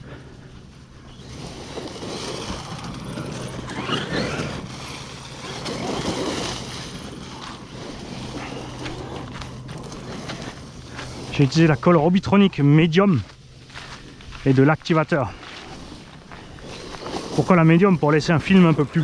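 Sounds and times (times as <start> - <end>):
rushing of tyres on grass: 0.0 - 19.0
electric motor whine rising: 0.6 - 14.4.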